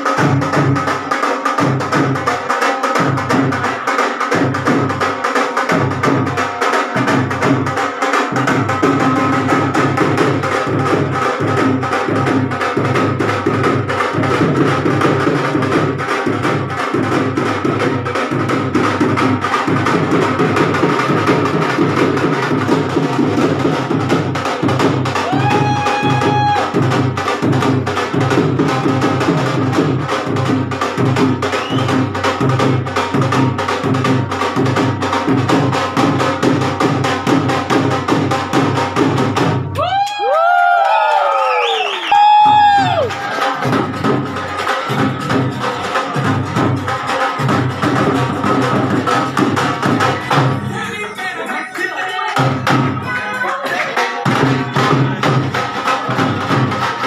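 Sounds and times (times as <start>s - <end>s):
barrel drum drumming: 0.0s - 40.0s, 42.2s - 51.0s, 52.4s - 57.0s
voices whooping: 25.2s - 26.8s, 39.8s - 43.6s.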